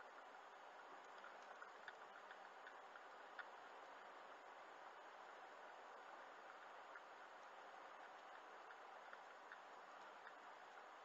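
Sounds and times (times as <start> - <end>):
faint steady hiss: 0.0 - 11.0
soft ticks: 0.0 - 11.0.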